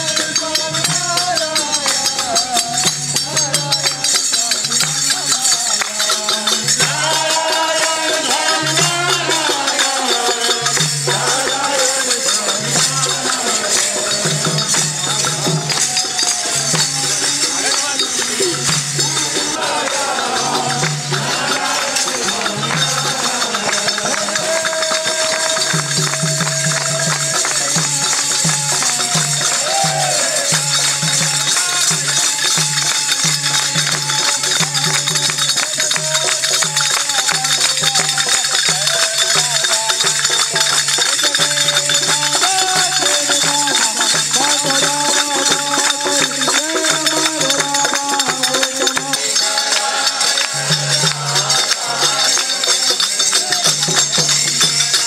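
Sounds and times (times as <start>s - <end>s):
dholak drum beat: 0.0s - 55.0s
hand clapping: 0.0s - 55.0s
men singing devotional song: 0.0s - 55.0s.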